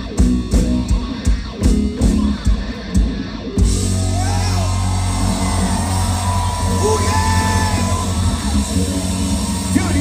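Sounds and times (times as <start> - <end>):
live rock band holding a chord: 0.0 - 10.0
voices yelling and whooping: 3.8 - 10.0.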